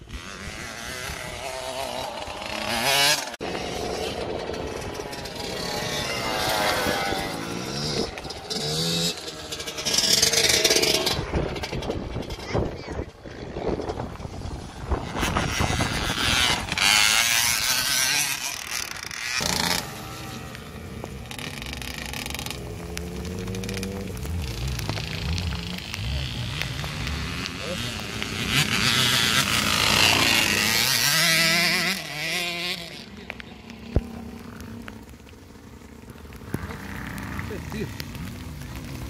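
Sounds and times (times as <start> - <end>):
motocross bike engine revving: 0.0 - 39.0.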